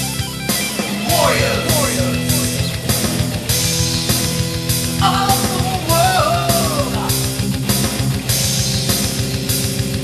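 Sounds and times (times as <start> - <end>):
heavy metal instrumental: 0.0 - 10.0.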